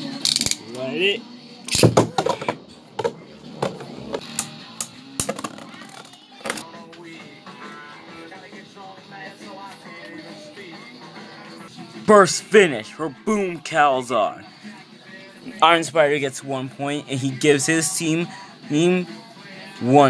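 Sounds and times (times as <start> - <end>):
background music: 0.0 - 20.0
spinning tops clashing: 0.1 - 0.7, 3.6 - 6.6.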